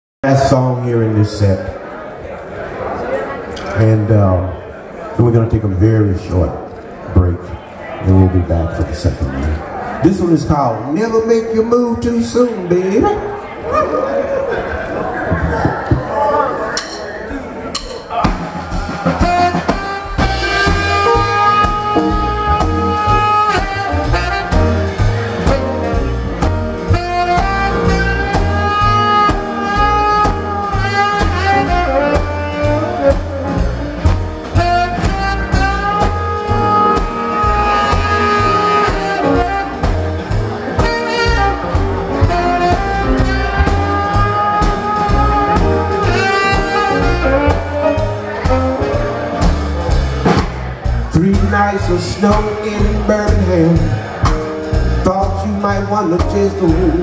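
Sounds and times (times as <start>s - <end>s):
live jazz band playing: 3.4s - 13.7s, 14.3s - 57.0s
saxophone melody: 18.8s - 50.1s.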